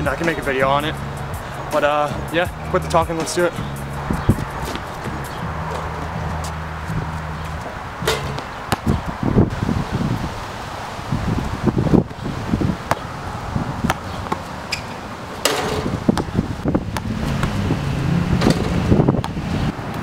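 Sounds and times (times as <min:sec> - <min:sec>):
wind noise on microphone: 0:00.0 - 0:20.0
basketball bouncing: 0:04.1 - 0:09.1, 0:12.8 - 0:13.1, 0:13.8 - 0:17.7.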